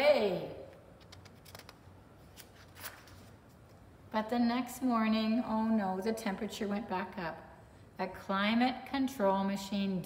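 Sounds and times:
paper page turning: 1.0 - 3.7.

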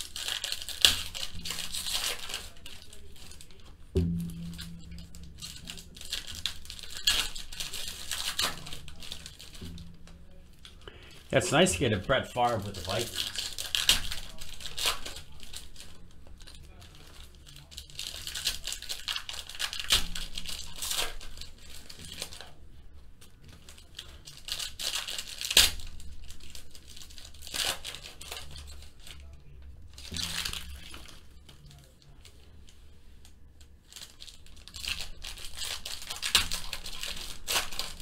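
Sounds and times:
foil card packs tearing and crinkling: 0.0 - 22.6, 23.3 - 32.4, 33.9 - 38.0.

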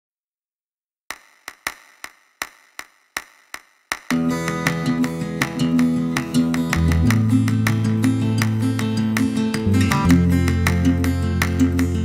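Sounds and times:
sharp percussion clicks: 1.1 - 12.0.

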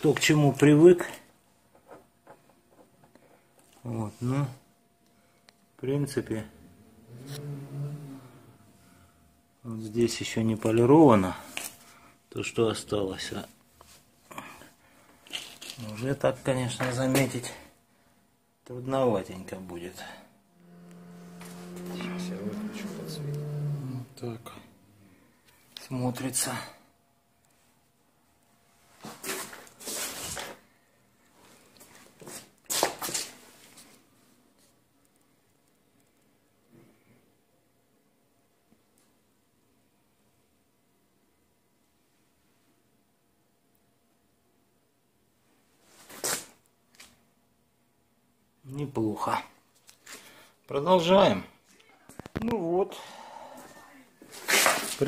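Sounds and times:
rustling and scuffing: 28.8 - 30.6, 31.4 - 34.0, 45.8 - 47.2, 54.2 - 55.0.

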